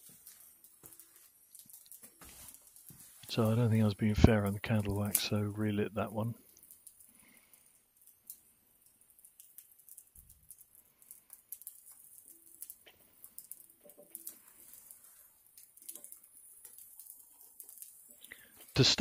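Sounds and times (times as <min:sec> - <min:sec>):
pine cones crackling in fire: 0:00.0 - 0:19.0.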